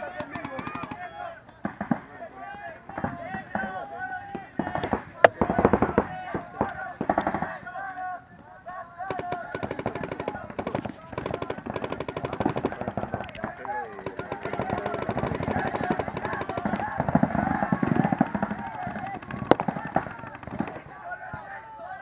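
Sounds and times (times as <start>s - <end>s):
paintball markers rapid fire: 0.0s - 1.1s, 9.0s - 21.0s.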